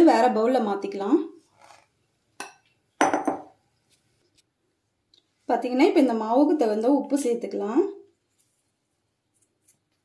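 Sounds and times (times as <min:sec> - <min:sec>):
glass bowl clinking down: 0:02.4 - 0:03.5.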